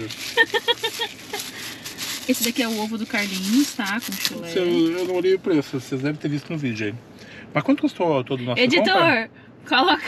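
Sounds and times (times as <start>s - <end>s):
person laughing: 0.2s - 1.6s.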